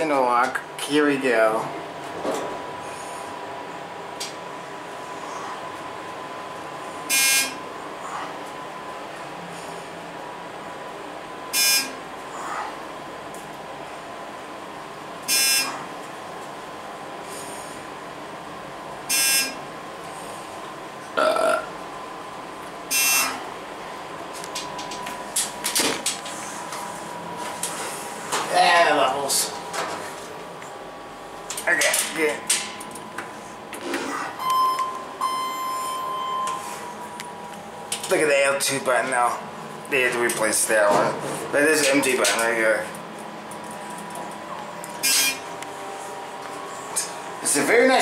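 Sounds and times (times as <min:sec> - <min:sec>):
elevator humming and whining: 0:00.0 - 0:48.0
elevator signal buzz: 0:07.0 - 0:07.8, 0:11.4 - 0:12.2, 0:15.2 - 0:15.9, 0:19.0 - 0:19.8, 0:21.4 - 0:25.7, 0:34.4 - 0:37.9, 0:44.4 - 0:46.0.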